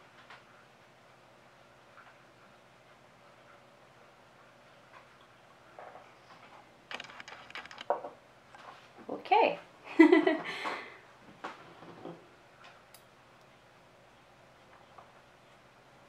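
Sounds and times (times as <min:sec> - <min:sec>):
woman laughing: 0:09.9 - 0:10.7.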